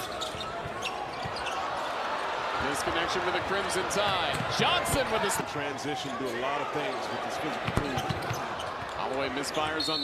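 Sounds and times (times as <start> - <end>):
arena noise: 0.0 - 10.0.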